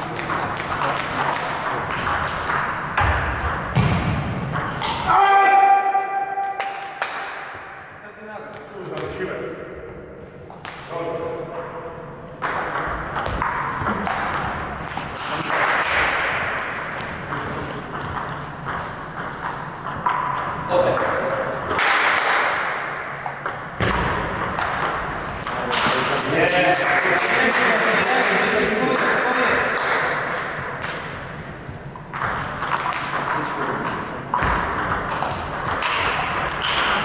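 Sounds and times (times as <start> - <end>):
table tennis balls clicking: 0.0 - 3.8, 12.4 - 22.5, 23.2 - 27.7, 29.8 - 37.0.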